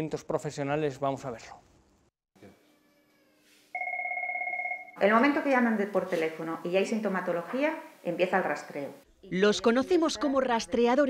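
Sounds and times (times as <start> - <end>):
telephone electronic trilling ring: 3.8 - 5.0.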